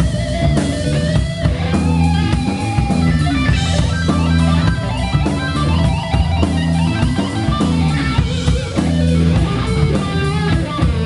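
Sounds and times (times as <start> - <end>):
electric guitar: 0.0 - 11.0
live rock band playing: 0.0 - 11.0.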